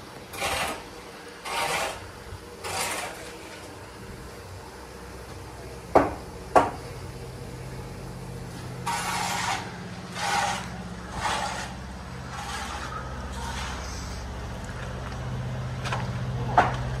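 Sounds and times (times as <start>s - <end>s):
machinery engine drone: 0.0s - 17.0s
footsteps on stone and debris: 14.6s - 17.0s.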